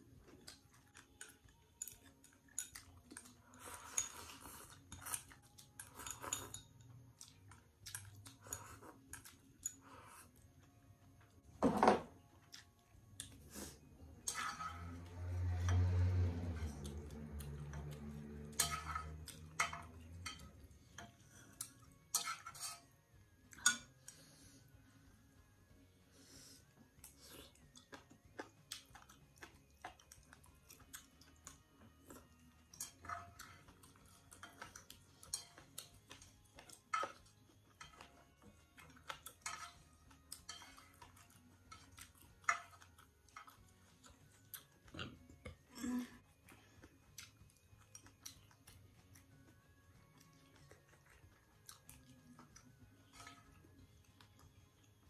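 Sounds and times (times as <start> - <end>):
chopsticks clinking on bowl: 0.5 - 10.2, 14.2 - 22.9, 32.2 - 44.2.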